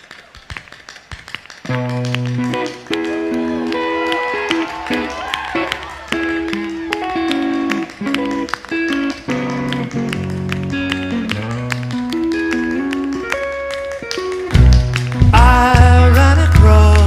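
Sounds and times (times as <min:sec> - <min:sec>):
clicking percussion: 0:00.0 - 0:17.0
guitar and keyboard notes: 0:01.7 - 0:17.0
live band music: 0:01.7 - 0:17.0
heavy bass and drums: 0:14.6 - 0:17.0.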